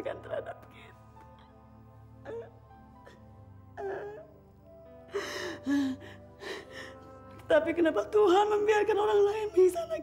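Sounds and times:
woman sobbing and wailing: 0.0s - 1.6s, 2.2s - 4.4s, 5.0s - 10.0s
soft background music: 0.0s - 10.0s.

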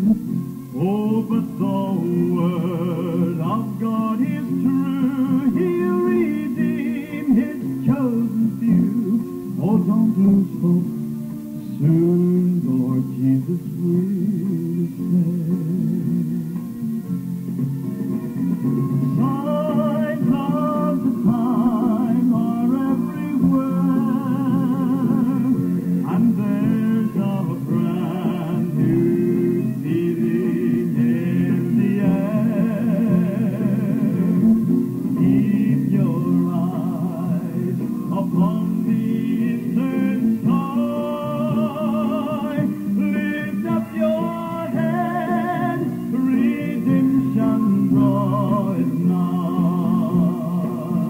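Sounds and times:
person singing with vibrato: 0.0s - 16.8s, 19.1s - 51.0s
instrumental accompaniment: 0.0s - 51.0s.

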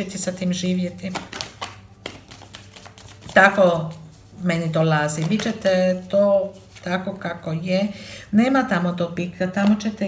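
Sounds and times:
cards being shuffled: 0.8s - 4.2s, 5.1s - 5.6s
card edges clicking: 1.1s - 3.3s.

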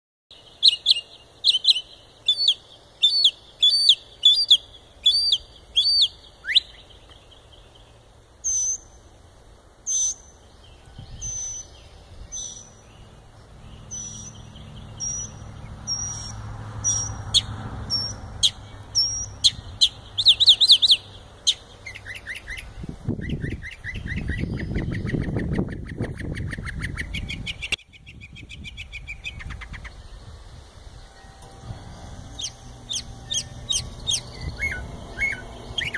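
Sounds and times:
songbird singing: 0.3s - 35.9s
low rumble: 30.0s - 35.9s.

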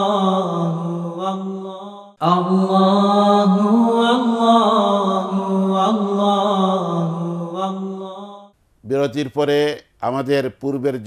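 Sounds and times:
person chanting religious melody: 0.0s - 8.5s.

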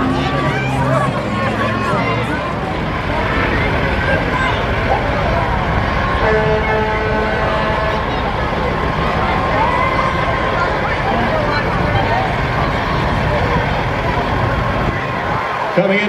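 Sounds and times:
crowd voices: 0.0s - 16.0s
diesel truck engine running low: 0.0s - 16.0s.

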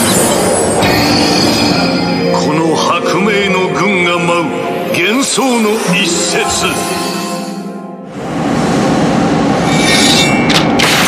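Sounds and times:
loud rushing rumble: 8.0s - 9.8s.

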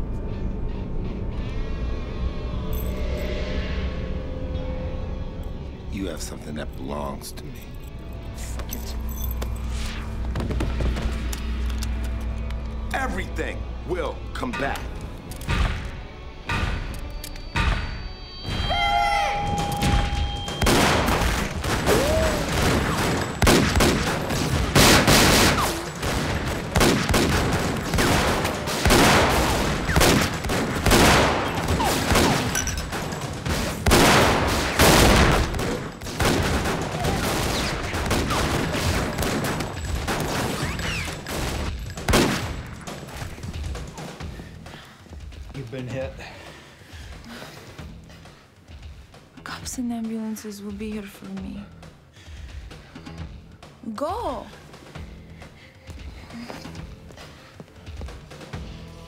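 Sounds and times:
dense pistol gunfire: 20.6s - 32.6s, 33.7s - 40.6s, 41.4s - 42.7s.

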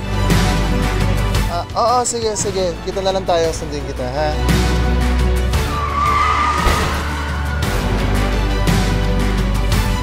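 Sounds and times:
background music: 0.0s - 10.0s
tyres screeching: 5.6s - 8.6s.

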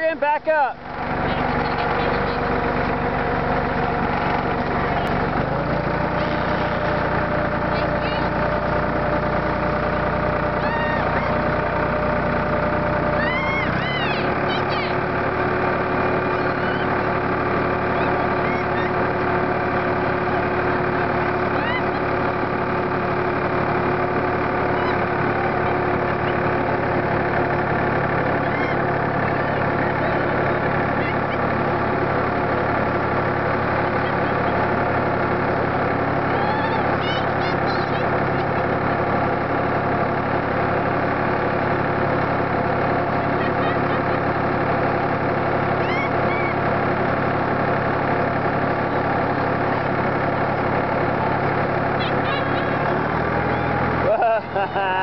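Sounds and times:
tractor engine running: 0.0s - 55.0s.

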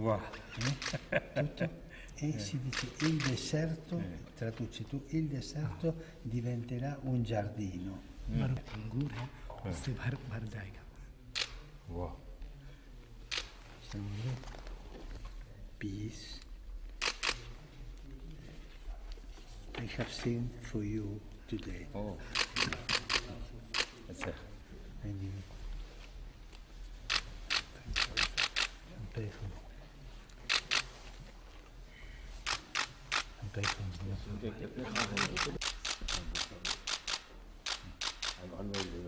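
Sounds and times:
murmur of voices: 27.1s - 39.0s
camera shutter click: 35.0s - 38.9s.

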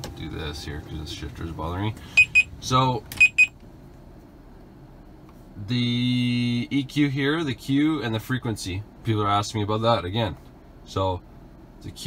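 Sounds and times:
quiet low hum: 0.0s - 12.0s.

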